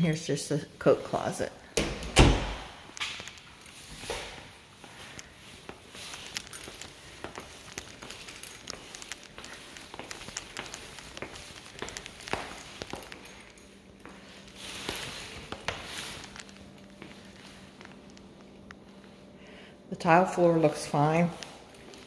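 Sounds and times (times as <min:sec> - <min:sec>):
faint steady hum: 0:00.0 - 0:22.0
footsteps on hardwood floor: 0:03.8 - 0:18.0.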